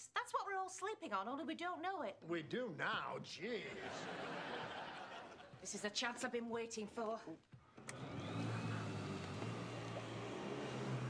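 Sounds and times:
vacuum cleaner switch click: 7.8 - 8.4
vacuum cleaner motor humming: 7.8 - 11.0.

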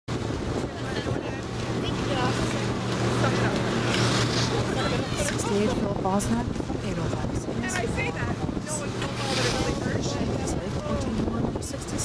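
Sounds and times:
distant voices chattering: 0.1 - 12.0
wind on microphone: 0.1 - 12.0.

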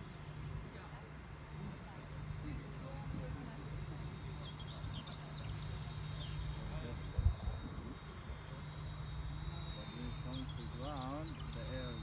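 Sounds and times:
rc jet fan whining: 0.0 - 12.0
wind rumble on microphone: 6.4 - 8.5.

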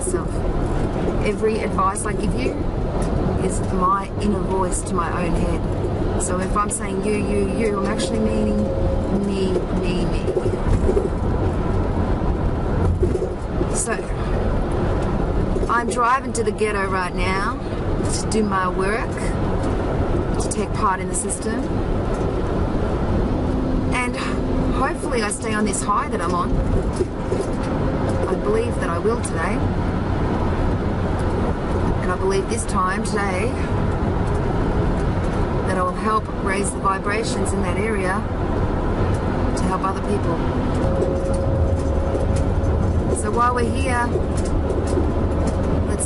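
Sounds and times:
car road and engine noise: 0.0 - 46.0.

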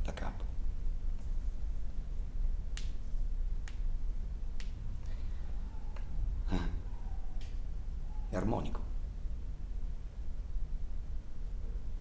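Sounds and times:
steady low hum: 0.0 - 12.0
finger snaps: 2.7 - 3.0, 3.6 - 3.9, 4.5 - 5.2, 5.9 - 6.1, 7.4 - 7.6.

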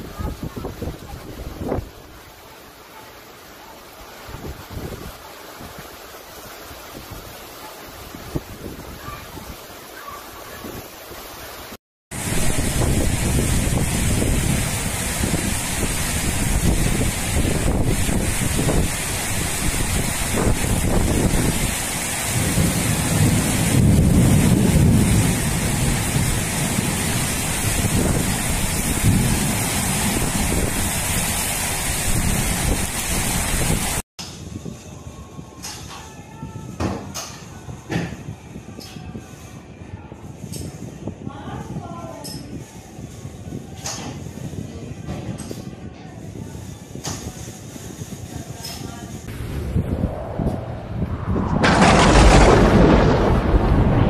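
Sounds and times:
heavy rain: 0.0 - 34.0, 49.2 - 54.0
wind: 0.0 - 54.0
low thunder rumble: 12.1 - 34.0, 49.2 - 54.0.

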